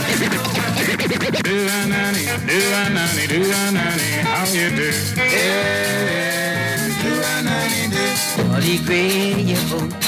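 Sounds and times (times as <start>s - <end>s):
turntable scratching: 0.0s - 9.9s
music: 0.0s - 10.0s.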